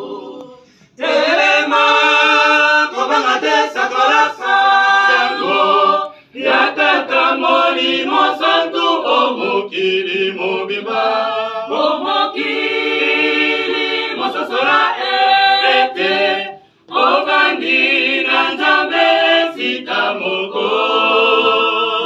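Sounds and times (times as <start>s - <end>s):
group singing a cappella: 0.0s - 22.0s.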